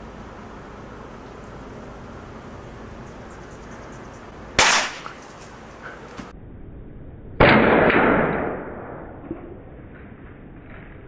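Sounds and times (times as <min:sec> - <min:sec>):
air rifle shot: 0:04.6 - 0:05.2, 0:07.4 - 0:09.3.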